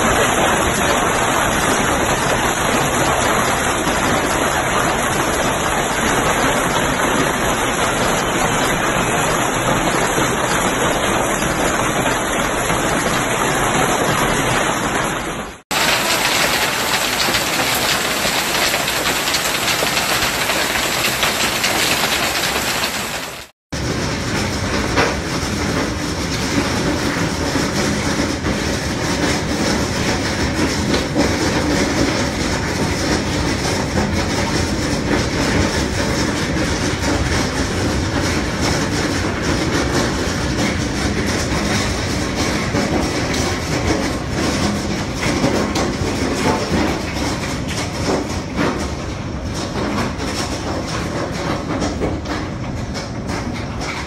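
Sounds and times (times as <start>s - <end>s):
hail pelting a swimming pool: 0.0s - 54.0s.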